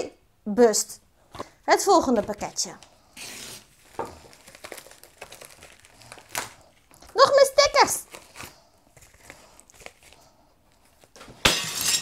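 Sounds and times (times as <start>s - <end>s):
knife scraping paper mailer: 3.2s - 3.7s
paper envelope tearing: 3.2s - 6.7s.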